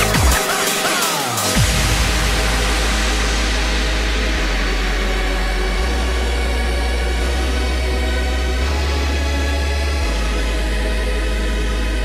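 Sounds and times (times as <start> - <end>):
synth noise wash: 0.0 - 12.0
deep bass note: 1.6 - 12.0.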